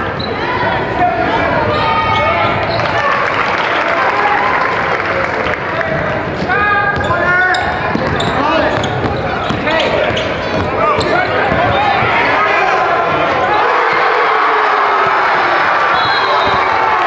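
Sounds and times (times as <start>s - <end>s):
crowd noise: 0.0s - 17.0s
basketball bouncing on court: 6.4s - 12.2s.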